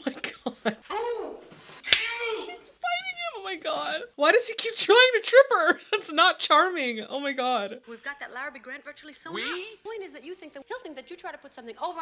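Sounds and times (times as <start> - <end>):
vocal cries and exclamations: 0.9 - 2.8
sharp smack: 1.9 - 2.2.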